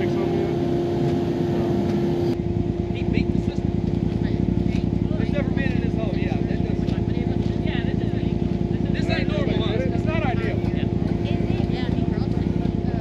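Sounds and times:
distant voices: 0:00.0 - 0:13.0
vehicle engine idling: 0:00.0 - 0:13.0.

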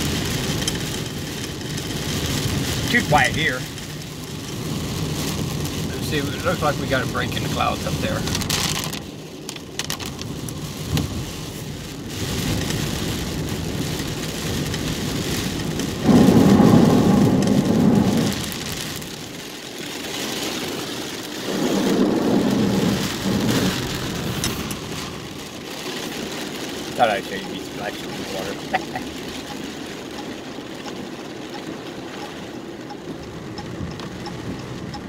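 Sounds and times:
rain and wet road hiss: 0:00.0 - 0:35.0.

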